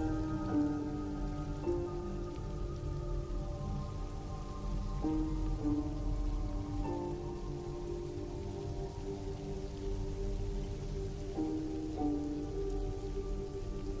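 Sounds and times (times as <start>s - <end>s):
film score with long notes: 0.0s - 14.0s
heavy rain on a street: 0.0s - 14.0s.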